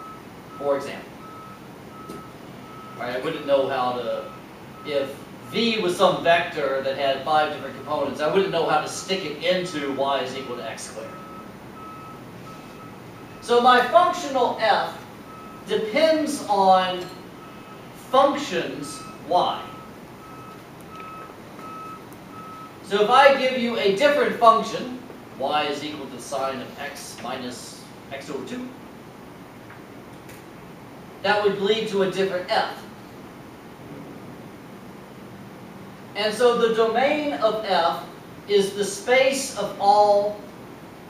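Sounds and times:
electronic beeps: 0:18.8 - 0:22.8.

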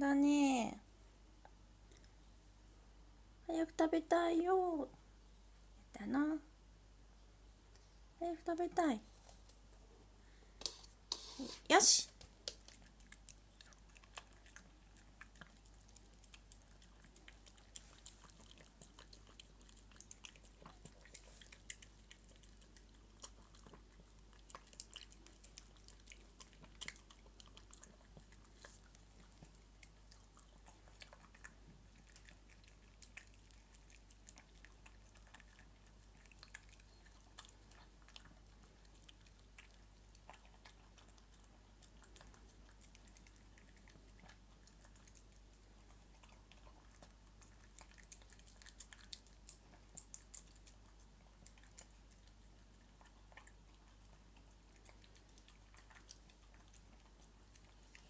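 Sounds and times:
dog chewing and smacking: 0:12.2 - 0:58.0.

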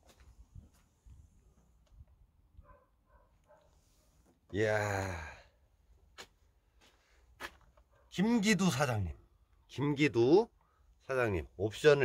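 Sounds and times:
man exclaiming: 0:04.5 - 0:05.5.

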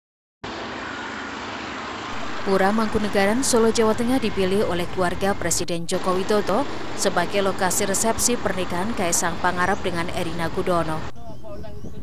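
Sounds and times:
cars passing: 0:00.4 - 0:11.1
motorcycles passing: 0:00.4 - 0:11.1.

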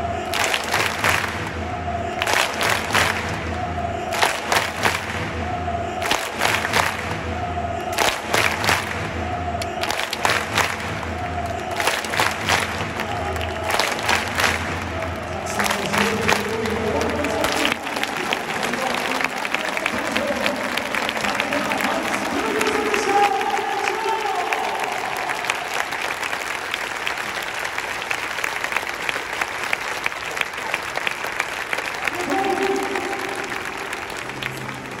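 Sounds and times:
stadium crowd clapping: 0:00.0 - 0:35.0.

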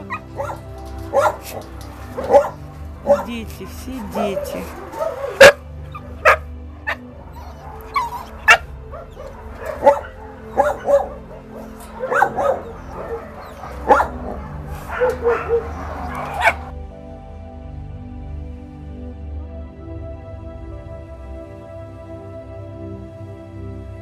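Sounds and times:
young dogs barking and yipping: 0:00.0 - 0:16.7
soft background music: 0:00.0 - 0:24.0.

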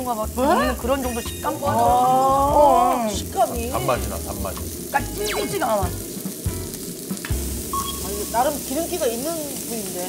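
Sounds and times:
beef sizzling on grill: 0:00.0 - 0:10.0.

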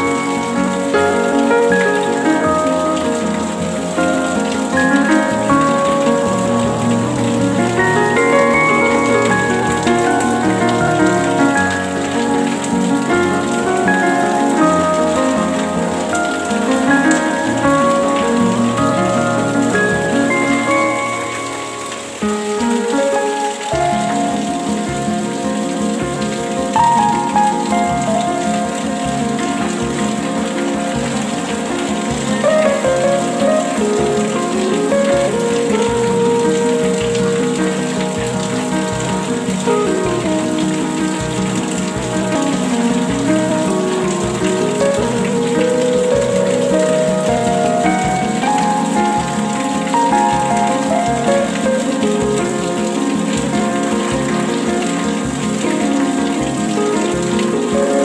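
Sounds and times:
slow melodic relaxation music: 0:00.0 - 0:58.0
steady rain: 0:00.0 - 0:58.0.

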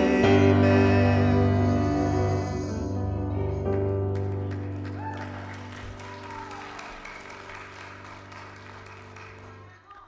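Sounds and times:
congregation clapping: 0:03.7 - 0:10.0.

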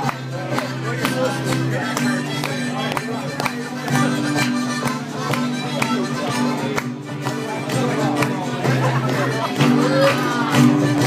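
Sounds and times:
folk band playing a jig: 0:00.0 - 0:11.0
strummed acoustic guitar: 0:00.0 - 0:11.0.

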